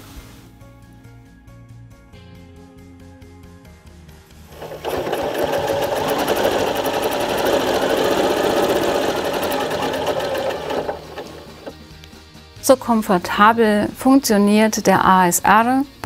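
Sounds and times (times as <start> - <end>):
sewing machine stitching: 4.5 - 11.8.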